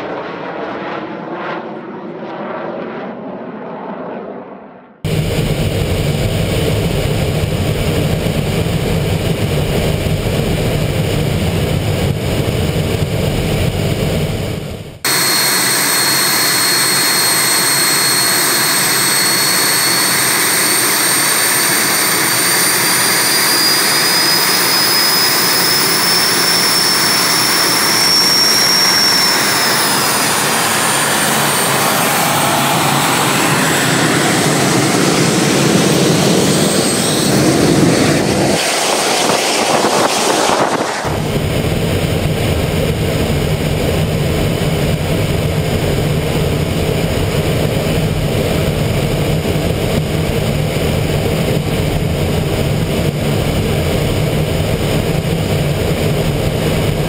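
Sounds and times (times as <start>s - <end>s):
jet engine roar with high whine: 0.0s - 57.0s
lower engine sound on board: 2.2s - 57.0s.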